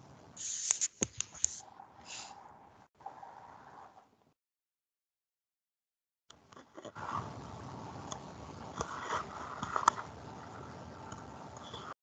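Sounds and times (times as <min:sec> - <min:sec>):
microphone hiss: 0:06.3 - 0:12.0.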